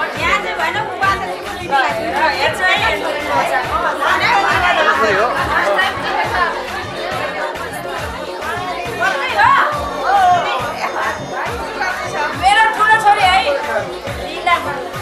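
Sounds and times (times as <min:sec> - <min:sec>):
background music with steady beat: 0:00.0 - 0:15.0
many voices chattering: 0:00.0 - 0:15.0.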